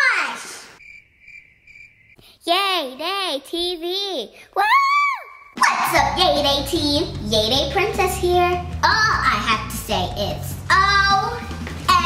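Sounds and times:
cricket chirping: 0.8 - 2.2.

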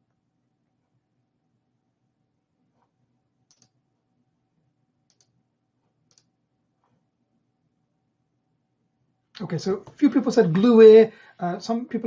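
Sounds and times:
faint clicks: 2.7 - 3.8, 5.1 - 7.0.

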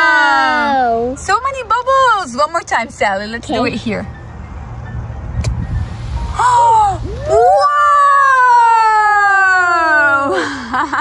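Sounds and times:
low rumble: 3.8 - 9.7.

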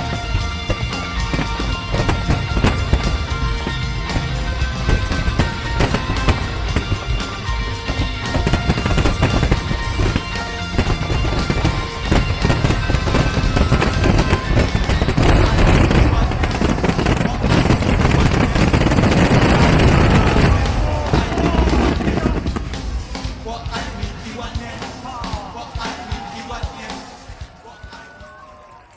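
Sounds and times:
fireworks crackling and banging: 0.0 - 28.9
music playing: 0.0 - 28.9.

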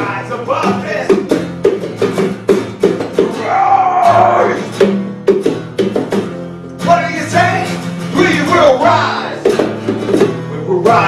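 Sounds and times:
drum strikes: 0.0 - 11.0
strummed acoustic guitars: 0.0 - 11.0.

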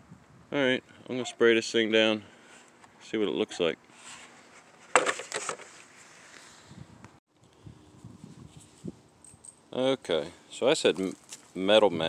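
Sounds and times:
plastic clatter: 4.9 - 5.8.

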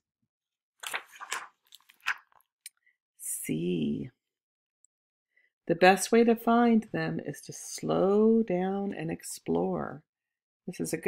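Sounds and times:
book page turning: 0.8 - 2.5.

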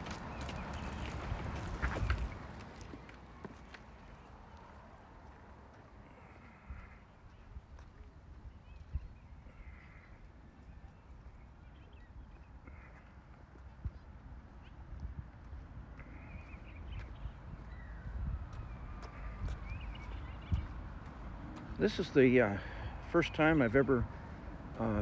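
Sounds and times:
footsteps on concrete: 0.0 - 9.1, 12.3 - 25.0
distant bird calls: 8.5 - 14.9, 15.9 - 23.0.

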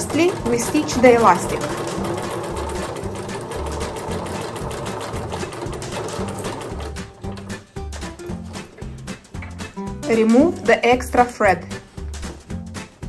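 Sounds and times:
electric sewing machine stitching: 0.0 - 7.5.

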